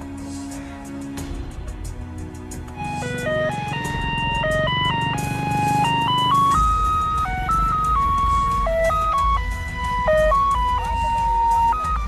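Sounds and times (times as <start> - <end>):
electronic ice cream jingle: 2.8 - 12.0
small motorcycle engine running: 3.6 - 10.6.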